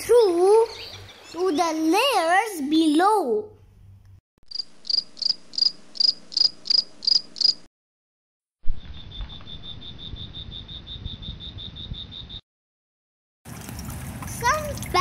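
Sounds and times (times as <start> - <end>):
crickets chirping: 4.5 - 7.7, 8.8 - 12.4.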